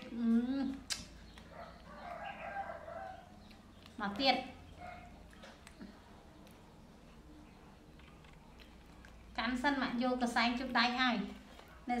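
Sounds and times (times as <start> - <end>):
rooster crowing: 1.9 - 3.3.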